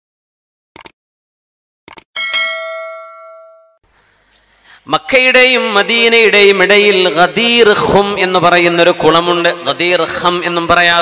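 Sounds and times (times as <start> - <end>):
bell chime: 2.2 - 3.8.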